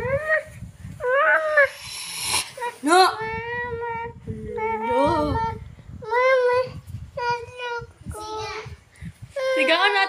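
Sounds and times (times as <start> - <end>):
breathy hiss: 1.5 - 2.9
toddler whiny crying: 9.4 - 10.0.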